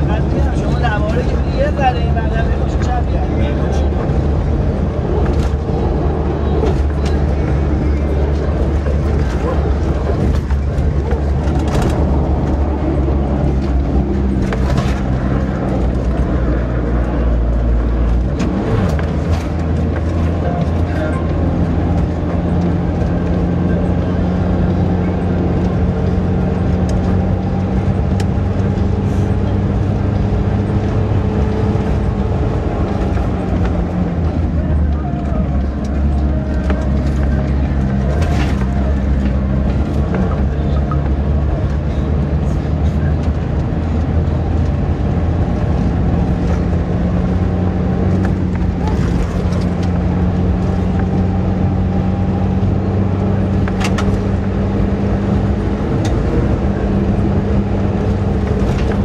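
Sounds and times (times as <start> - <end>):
tyre and road noise: 0.0 - 59.0
vehicle engine drone: 0.0 - 59.0.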